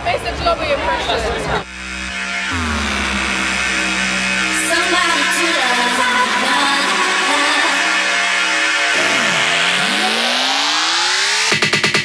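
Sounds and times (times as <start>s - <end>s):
rising synth sweeps: 1.6s - 11.6s
held synth chords: 1.6s - 12.0s.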